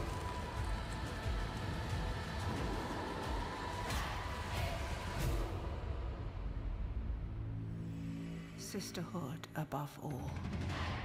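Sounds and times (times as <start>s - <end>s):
dark ominous trailer music: 0.0s - 11.0s.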